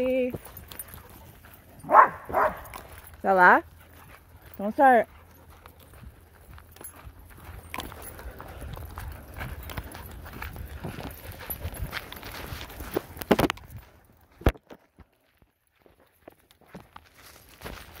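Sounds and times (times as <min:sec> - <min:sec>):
footsteps crunching on gravel: 0:00.0 - 0:18.0.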